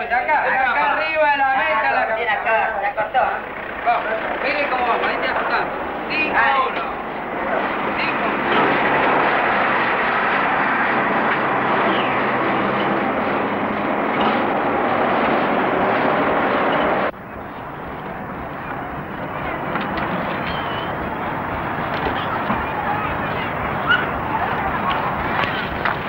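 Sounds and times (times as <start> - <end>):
outdoor background: 0.0 - 26.0
vehicle noise with engine hum: 4.4 - 26.0
faint high chirps: 20.1 - 25.8.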